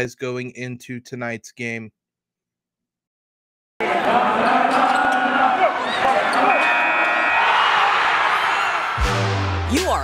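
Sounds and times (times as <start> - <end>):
arena crowd noise: 3.8 - 9.3.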